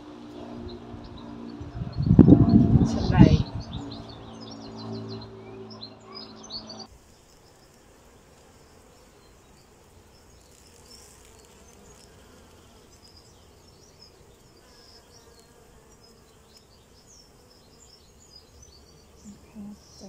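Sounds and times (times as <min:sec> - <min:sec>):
honeybees buzzing: 0:00.0 - 0:20.0.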